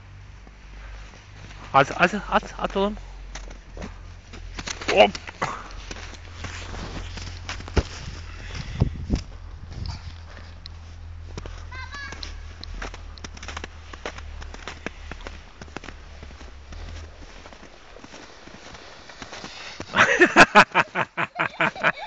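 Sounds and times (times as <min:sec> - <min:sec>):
low microphone rumble: 0:00.0 - 0:18.0
footsteps crunching in snow: 0:00.0 - 0:22.0.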